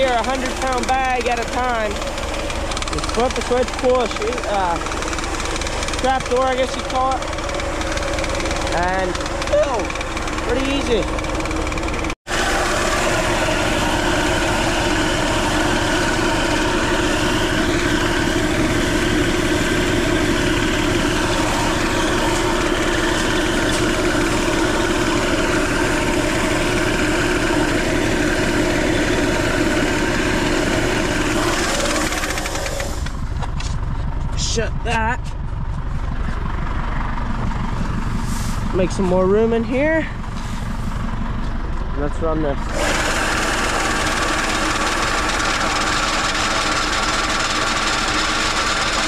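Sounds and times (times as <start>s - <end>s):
diesel tractor engine idling: 0.0s - 49.0s
seed pouring into hopper: 42.7s - 49.0s.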